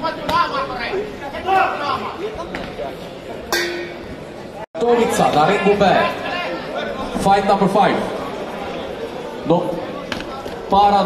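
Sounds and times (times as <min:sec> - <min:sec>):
people chattering and calling: 0:00.0 - 0:11.0.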